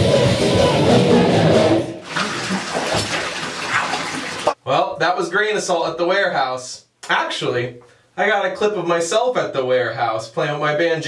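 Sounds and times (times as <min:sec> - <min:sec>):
man speaking: 0:04.6 - 0:11.0.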